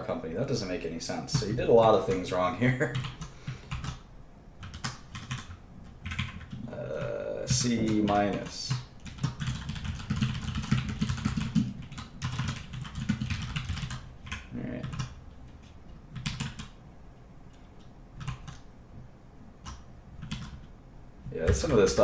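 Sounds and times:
typing on computer keyboard: 2.9s - 4.0s, 4.6s - 16.8s, 17.5s - 18.7s, 19.6s - 20.7s.

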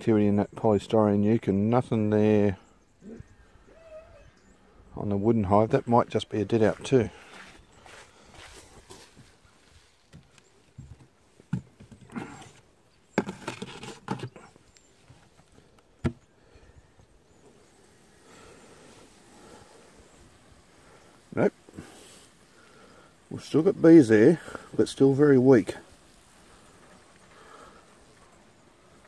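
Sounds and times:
stones set down on wood: 10.1s - 14.5s
wooden lid knocks and scrapes: 10.2s - 14.4s.

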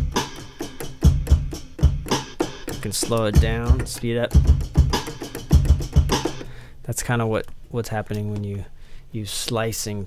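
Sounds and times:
drum break: 0.0s - 6.6s.

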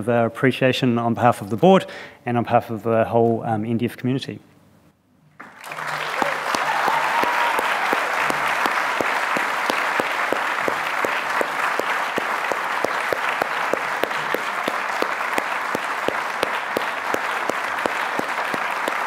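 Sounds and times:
audience applauding: 5.4s - 19.0s.

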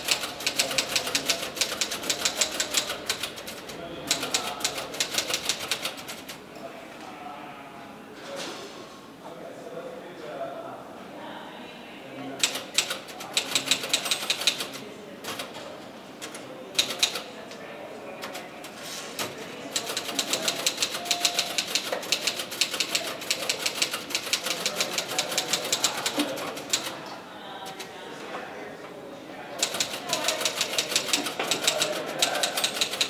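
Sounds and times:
typing on a keyboard: 0.0s - 6.4s, 12.4s - 15.6s, 16.2s - 17.3s, 19.2s - 26.9s, 29.6s - 33.0s
faint murmur of voices: 0.0s - 33.0s.

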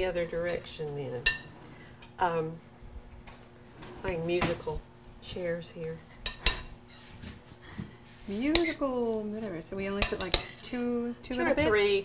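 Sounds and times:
spoon clinking against bowl: 10.0s - 10.5s.

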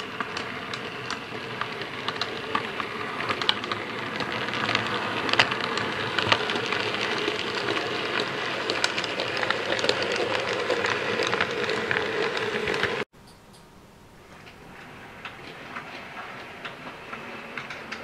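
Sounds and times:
model train motor hum: 0.0s - 13.0s
wheels clicking on rails: 0.0s - 13.6s, 14.2s - 18.0s.

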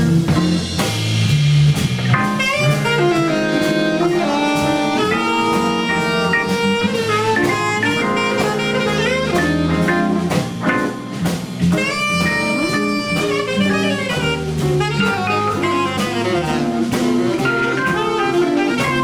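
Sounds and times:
drum kit: 0.0s - 19.0s
electric guitar: 0.0s - 19.0s
organ: 2.0s - 19.0s
alto saxophone melody: 2.1s - 19.0s.

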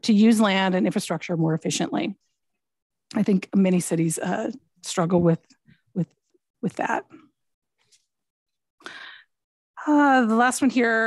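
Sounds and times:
woman speaking: 0.0s - 2.3s, 3.1s - 7.3s, 9.8s - 11.0s.

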